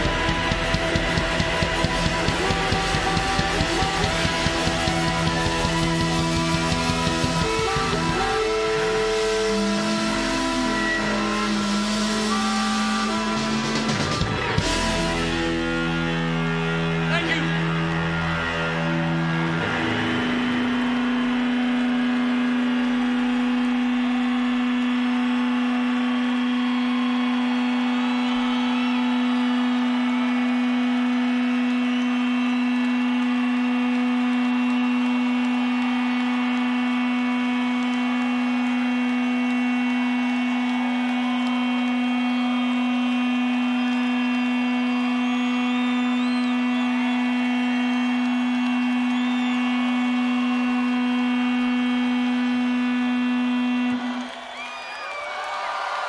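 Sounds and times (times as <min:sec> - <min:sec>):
crowd whistles and shouts: 0:00.0 - 0:56.0.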